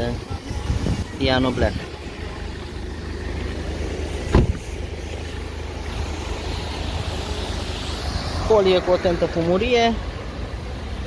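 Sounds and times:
street traffic rumble: 0:00.0 - 0:11.0
sharp thump: 0:04.2 - 0:04.7.

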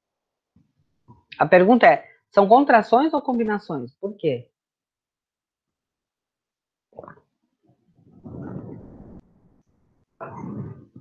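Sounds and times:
microphone rubbing on sweater: 0:07.9 - 0:09.6, 0:10.2 - 0:11.0.

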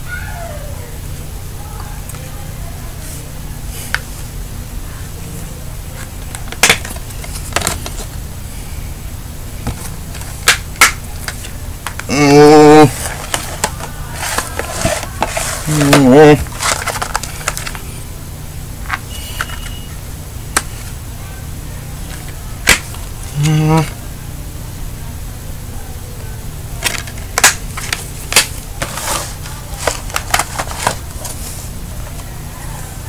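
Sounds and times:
wordless vocal sounds: 0:23.3 - 0:24.0
plastic cases clicking: 0:29.8 - 0:31.4.

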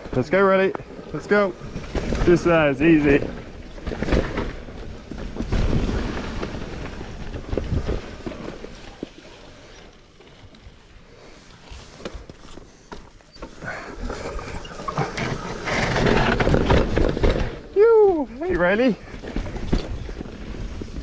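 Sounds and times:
bike knocking and rattling: 0:00.0 - 0:10.8, 0:12.0 - 0:21.0
bike tyres rolling on dirt: 0:00.0 - 0:21.0.

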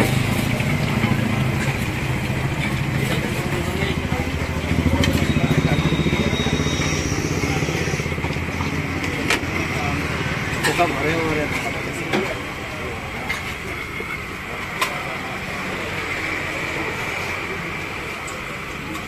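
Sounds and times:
motorcycle engine running: 0:00.1 - 0:10.4.

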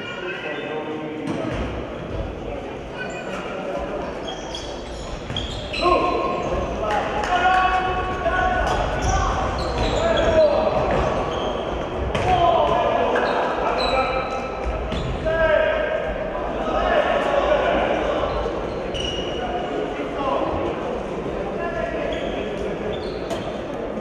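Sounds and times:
shoes squeaking: 0:04.1 - 0:06.7, 0:08.7 - 0:11.8, 0:22.1 - 0:23.6
players shouting: 0:05.7 - 0:18.6.

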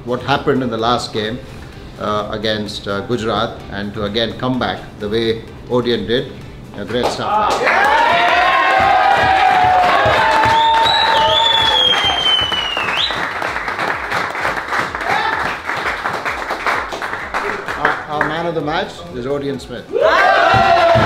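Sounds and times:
hand-clapping: 0:06.9 - 0:18.5
men shouting and cheering: 0:07.1 - 0:13.0, 0:14.9 - 0:15.8, 0:19.9 - 0:21.0
high whistle: 0:10.4 - 0:13.3.

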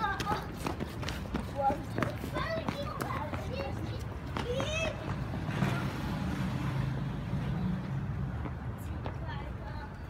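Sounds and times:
vehicle engine passing by: 0:05.1 - 0:08.5.

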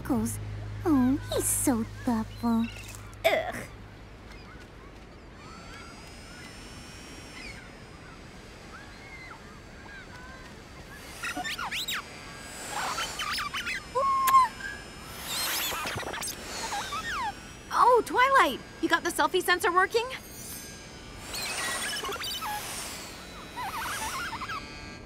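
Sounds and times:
gulls calling: 0:00.0 - 0:25.0
rush of noise: 0:08.6 - 0:18.8.

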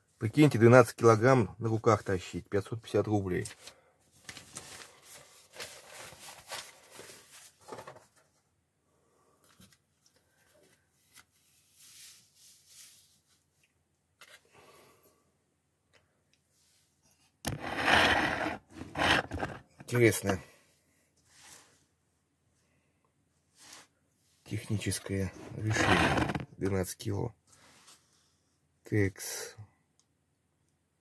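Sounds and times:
newspaper rustling: 0:04.2 - 0:07.9.

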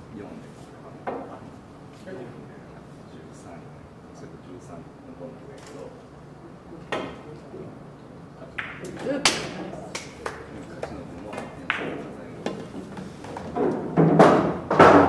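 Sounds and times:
cue striking cue ball: 0:08.6 - 0:09.6, 0:13.6 - 0:15.0.

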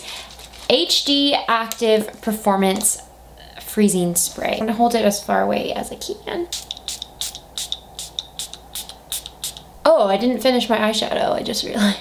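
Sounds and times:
spray bottle spritzes: 0:06.5 - 0:09.7.

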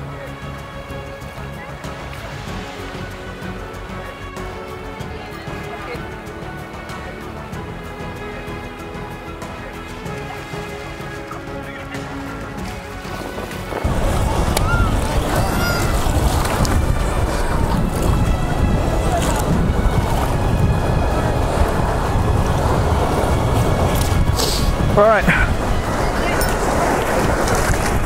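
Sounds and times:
background music: 0:00.0 - 0:28.0
surf washing and splashing: 0:00.0 - 0:28.0
wind rumble on microphone: 0:00.0 - 0:28.0.

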